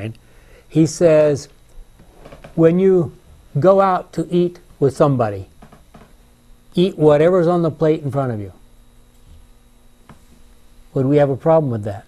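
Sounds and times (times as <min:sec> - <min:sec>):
man speaking: 0:00.0 - 0:01.5, 0:02.6 - 0:05.5, 0:06.8 - 0:08.6, 0:10.9 - 0:12.0
faint electrical hum: 0:00.0 - 0:12.0.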